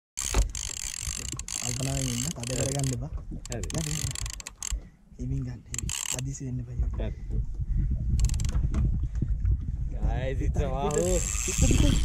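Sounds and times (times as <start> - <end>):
fishing reel drag buzzing: 0.2 - 4.8, 5.7 - 6.2, 8.2 - 8.6, 10.9 - 12.0
man talking: 1.6 - 4.2, 10.0 - 12.0.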